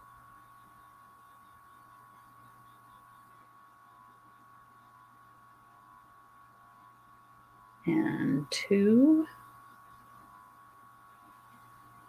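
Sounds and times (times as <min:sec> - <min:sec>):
faint electrical hum: 0:00.0 - 0:12.0
woman speaking: 0:07.9 - 0:09.4.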